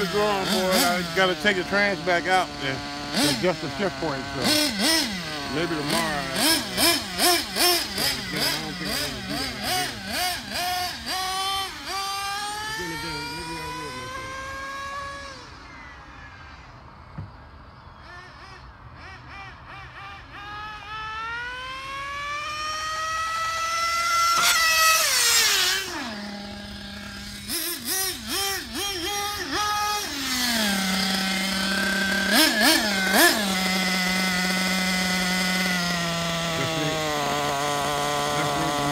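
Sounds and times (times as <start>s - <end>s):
model car engine revving: 0.0s - 17.0s, 18.0s - 38.9s.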